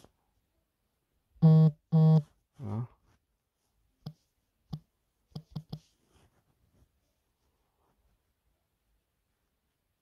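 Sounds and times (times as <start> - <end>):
short buzzing beeps: 1.4 - 2.3.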